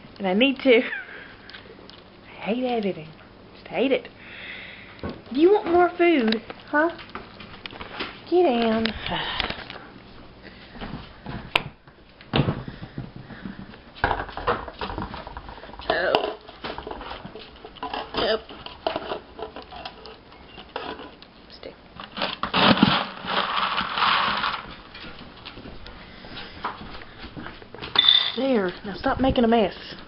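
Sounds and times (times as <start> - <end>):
pet bowls clattering: 14.0 - 21.2, 22.0 - 25.2, 27.8 - 28.6.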